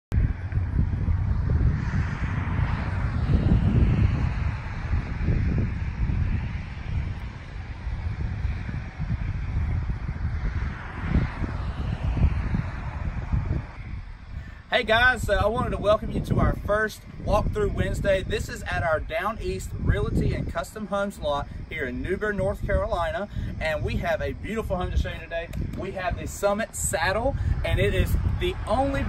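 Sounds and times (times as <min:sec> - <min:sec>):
wind buffeting a microphone: 0:00.1 - 0:29.0.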